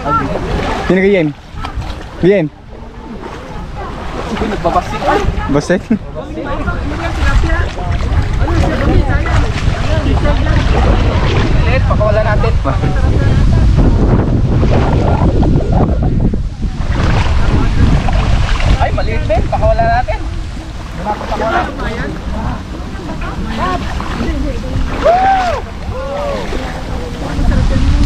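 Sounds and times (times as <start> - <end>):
water sloshing around wading legs: 0.0 - 11.6, 16.7 - 19.6, 20.2 - 28.0
wind buffeting microphone: 0.0 - 28.0.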